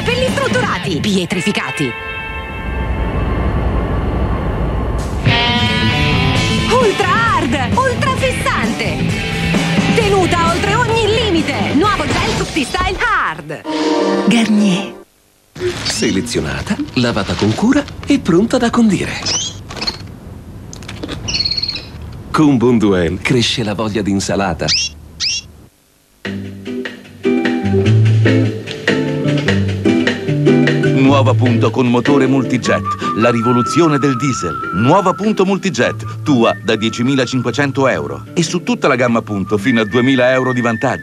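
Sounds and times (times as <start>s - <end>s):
small bird trilling: 19.2s - 20.1s, 21.2s - 22.0s, 24.6s - 25.6s.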